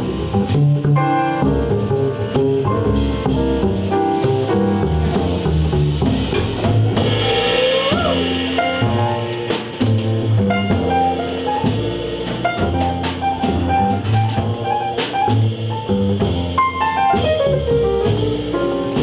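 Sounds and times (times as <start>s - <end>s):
jazz combo playing: 0.0s - 19.0s
short rising slide: 5.1s - 14.4s.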